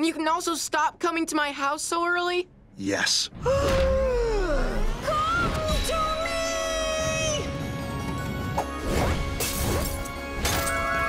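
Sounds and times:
background music: 2.5 - 11.0.

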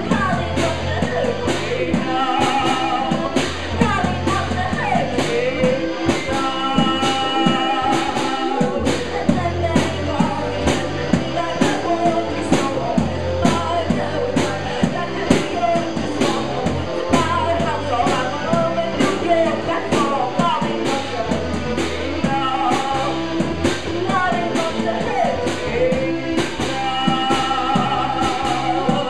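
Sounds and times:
drum kit beat: 0.0 - 29.0
electric guitars: 0.0 - 29.0
person singing: 0.0 - 29.0.

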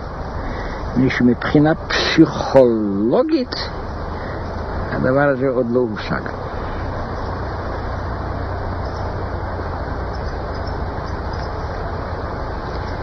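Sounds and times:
even hiss: 0.0 - 13.0
steady low hum: 0.0 - 13.0.

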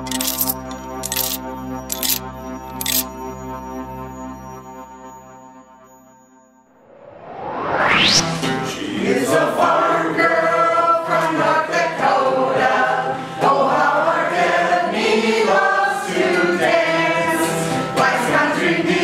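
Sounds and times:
group singing: 8.6 - 19.0.

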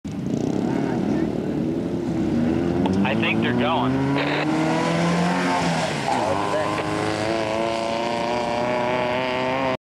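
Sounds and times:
dune buggy engine at high revs: 0.1 - 9.8.

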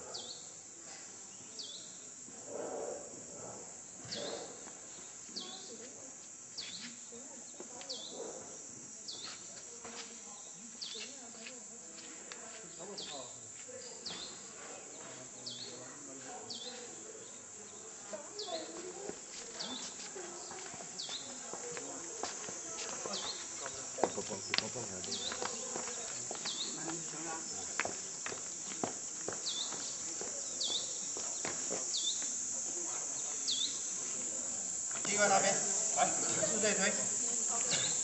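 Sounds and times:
insects buzzing: 0.0 - 38.0.

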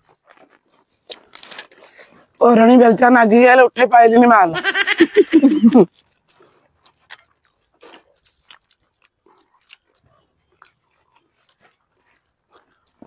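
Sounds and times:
soft lip smacks and chewing: 0.0 - 2.4, 5.8 - 13.0.

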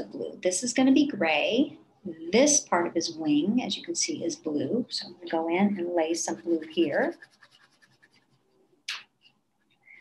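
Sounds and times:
crayon scratching on paper: 6.0 - 8.5.

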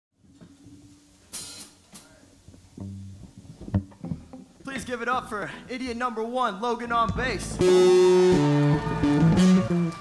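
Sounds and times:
low held bass guitar note: 7.4 - 9.8.

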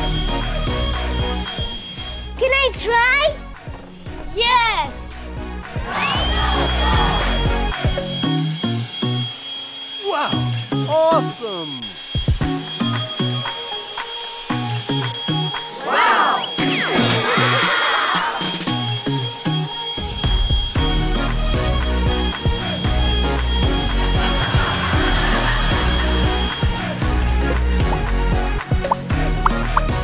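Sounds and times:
background music: 0.0 - 9.4, 10.0 - 30.0
leaf blower whining: 5.9 - 17.5, 18.3 - 28.3.

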